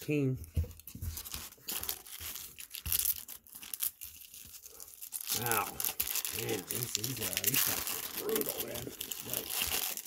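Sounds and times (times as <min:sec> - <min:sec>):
foil pack crinkling and tearing: 0:01.1 - 0:10.0.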